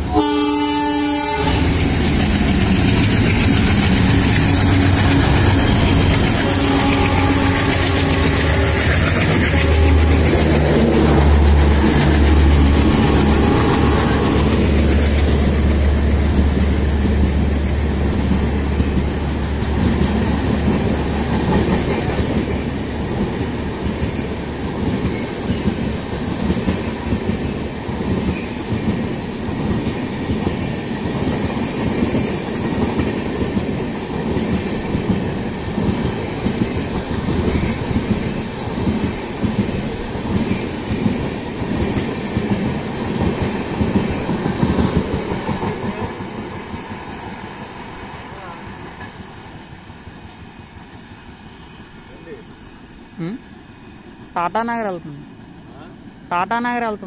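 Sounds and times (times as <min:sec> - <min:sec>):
train passing with rumble: 0:00.0 - 0:57.0
wheels clacking over rails: 0:01.5 - 0:30.7.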